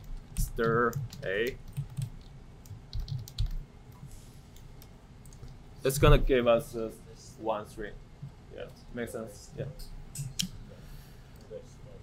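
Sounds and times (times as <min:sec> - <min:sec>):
keyboard keystrokes: 0:00.0 - 0:03.6.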